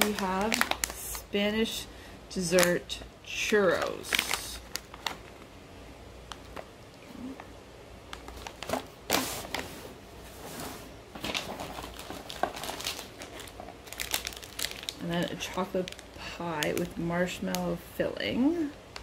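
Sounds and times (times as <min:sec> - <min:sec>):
plastic wrappers crinkling: 0:00.0 - 0:01.8, 0:02.4 - 0:03.0, 0:03.6 - 0:05.5, 0:06.2 - 0:06.7, 0:08.1 - 0:09.7, 0:11.1 - 0:17.8.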